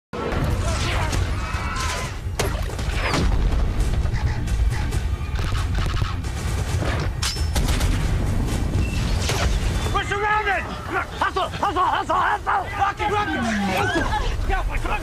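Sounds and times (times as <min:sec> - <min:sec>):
film score music: 0:00.2 - 0:15.0
explosion blasts: 0:02.3 - 0:04.7, 0:05.3 - 0:10.0
weapon fire: 0:05.3 - 0:09.9.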